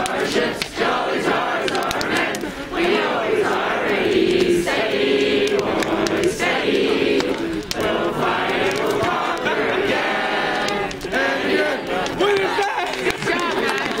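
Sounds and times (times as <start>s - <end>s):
group of voices chanting: 0.0s - 14.0s.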